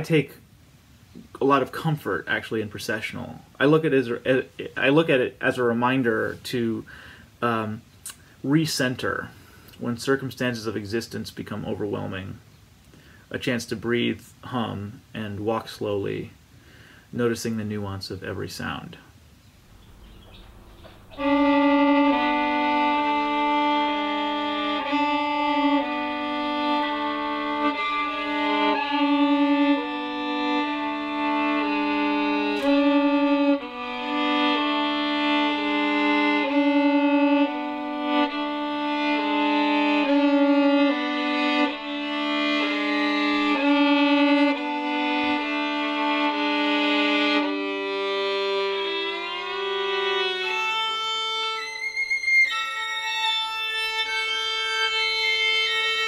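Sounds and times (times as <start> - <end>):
solo violin playing: 19.7 - 56.0.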